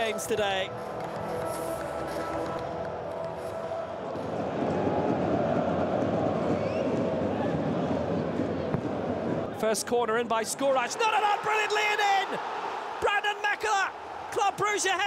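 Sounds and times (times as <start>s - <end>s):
background music: 0.0s - 9.6s
stadium crowd noise: 0.0s - 15.0s.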